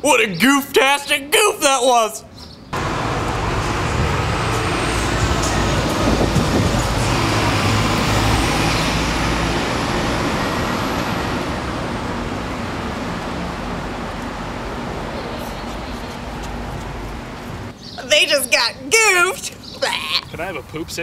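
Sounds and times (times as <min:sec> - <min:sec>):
heavy vehicle rumble: 0:02.7 - 0:17.8
traffic wash: 0:02.8 - 0:17.8.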